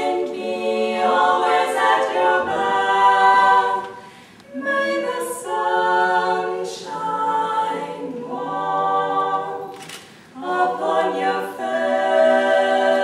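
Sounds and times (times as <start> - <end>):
women singing a cappella harmony: 0.0 - 13.0.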